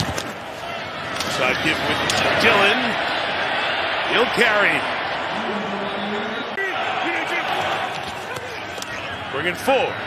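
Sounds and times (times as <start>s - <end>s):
stadium crowd din: 0.0s - 10.0s.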